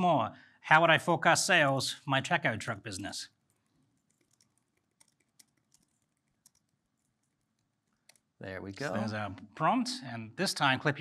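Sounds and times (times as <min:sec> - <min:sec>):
typing on computer keyboard: 0:03.5 - 0:08.4.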